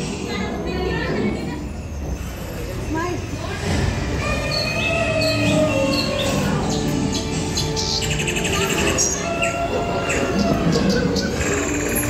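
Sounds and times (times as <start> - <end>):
sustained high tones: 1.1 - 12.0.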